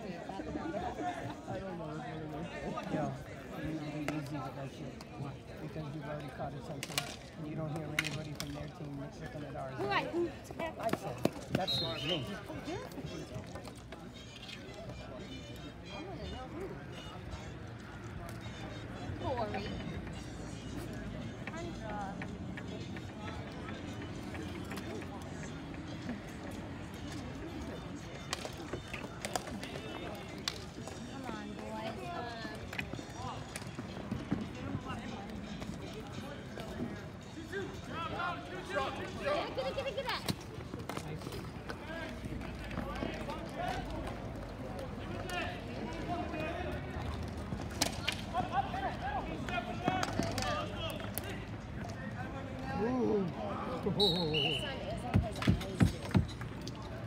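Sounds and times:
people talking and calling out: 0:00.0 - 0:57.0
sticks and ball clacking: 0:06.2 - 0:08.7, 0:21.4 - 0:31.6, 0:39.9 - 0:48.4, 0:49.3 - 0:52.0.

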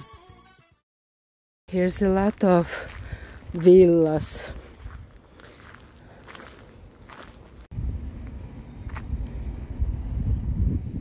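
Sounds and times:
faint footsteps: 0:01.8 - 0:09.2.

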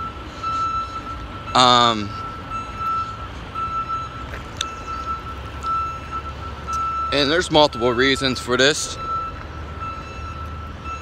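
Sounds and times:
electronic warning beeps: 0:00.0 - 0:11.0.

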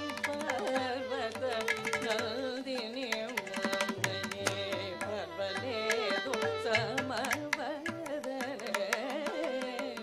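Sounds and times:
violin: 0:00.0 - 0:10.0
woman singing: 0:00.0 - 0:10.0.

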